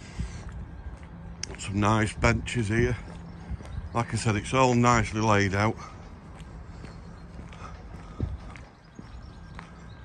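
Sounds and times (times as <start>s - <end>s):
faint outdoor background: 0.0s - 10.0s
footsteps on paved path: 0.0s - 10.0s.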